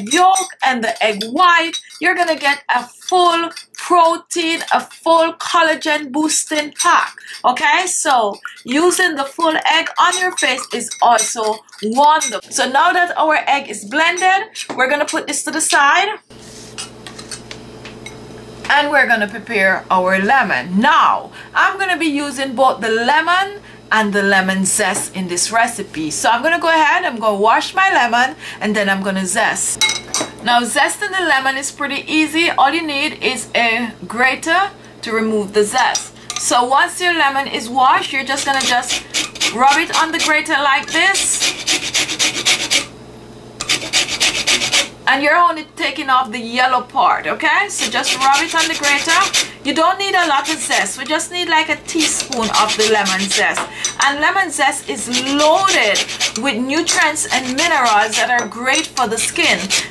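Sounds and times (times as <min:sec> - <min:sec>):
fork clinking against glass bowl: 0:00.0 - 0:05.3, 0:06.3 - 0:07.5, 0:08.1 - 0:12.5, 0:29.8 - 0:30.3, 0:56.9 - 0:57.1
grater rasping lemon peel: 0:00.1 - 0:12.3, 0:38.0 - 0:42.9, 0:43.6 - 0:45.0, 0:47.7 - 0:50.9, 0:51.9 - 0:53.6, 0:54.8 - 0:59.9
steady low hum: 0:16.2 - 0:59.9.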